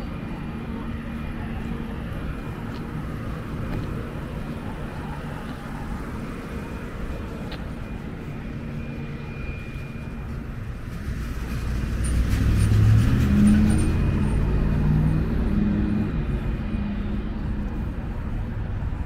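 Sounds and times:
traffic hum: 0.0 - 19.0
vehicle engine rumble passing: 0.0 - 19.0.

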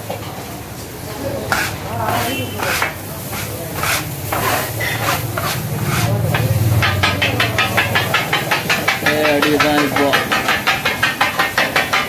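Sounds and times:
metal blades chopping on griddle: 1.4 - 12.0.

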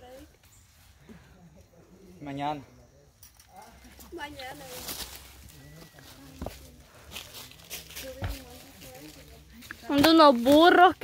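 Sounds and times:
faint voices: 0.9 - 10.9
footsteps through brush: 3.7 - 11.0.

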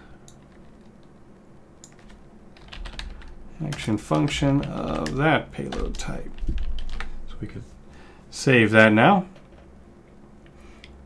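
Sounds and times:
computer keyboard typing: 0.3 - 1.0, 1.8 - 7.1.

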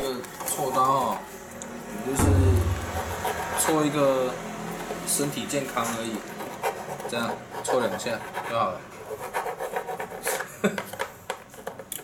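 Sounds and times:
file rasping plastic: 6.2 - 10.5.

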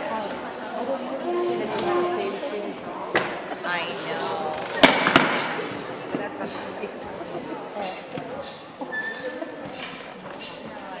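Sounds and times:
murmur of children's voices: 0.0 - 11.0.

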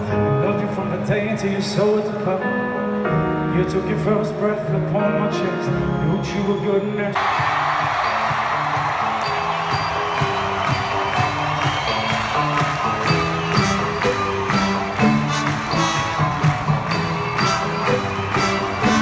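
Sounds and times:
hip-hop concert music over pa: 0.0 - 19.0
crowd noise: 5.8 - 19.0.

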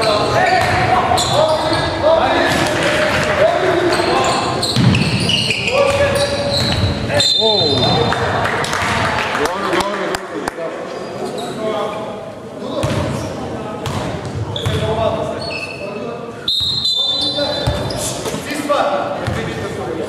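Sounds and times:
referee's whistle blast: 16.4 - 17.7.

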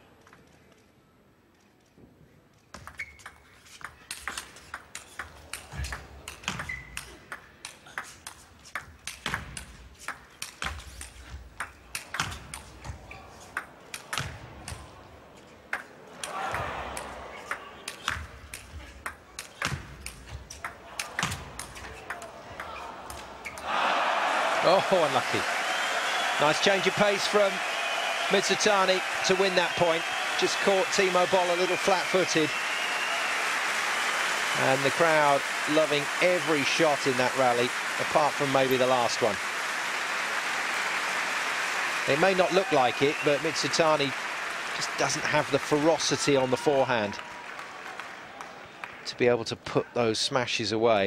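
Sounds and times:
crowd cheering and applauding: 23.6 - 49.0.

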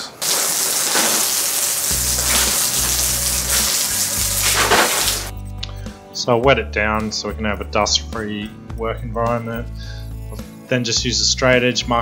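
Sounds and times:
hose spraying onto concrete: 0.0 - 5.3
background music with bass: 1.9 - 12.0.

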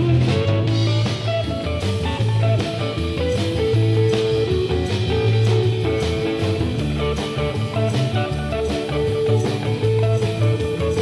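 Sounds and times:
bass guitar: 0.0 - 11.0
drum kit beat: 0.0 - 11.0
electric guitars: 0.0 - 11.0.

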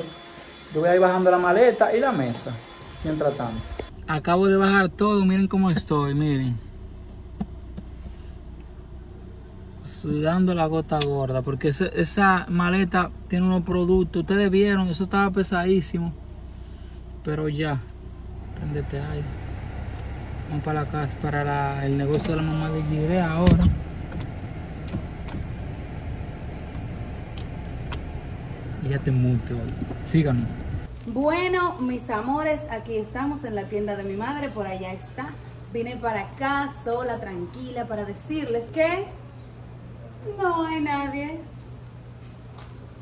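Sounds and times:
car cabin hum: 4.9 - 9.7, 17.8 - 30.9.

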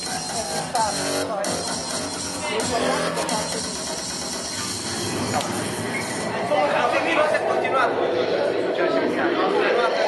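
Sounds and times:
crowd chatter in a hall: 0.0 - 10.0.

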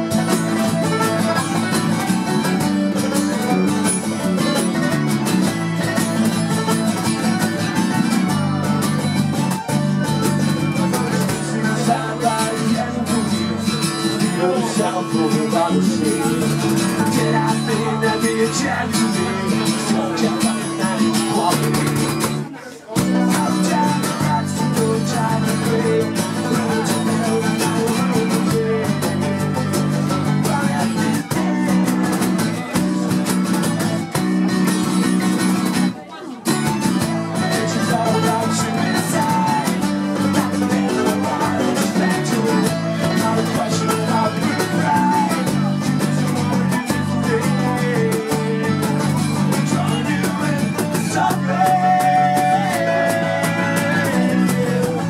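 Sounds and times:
acoustic folk-punk band playing: 0.0 - 55.0
bass guitar: 0.0 - 55.0
cajon beat: 0.0 - 55.0
held melody line: 0.0 - 55.0.

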